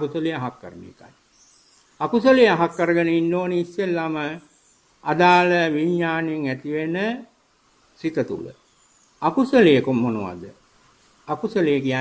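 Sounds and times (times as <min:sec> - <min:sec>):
man giving a sermon: 0:00.0 - 0:01.2, 0:02.0 - 0:07.3, 0:09.2 - 0:10.6, 0:11.3 - 0:12.0.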